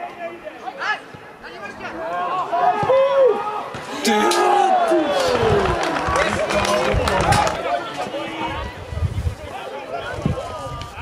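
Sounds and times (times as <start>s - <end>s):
spectators talking and calling out: 0.0s - 11.0s
loud held shout: 2.0s - 8.8s.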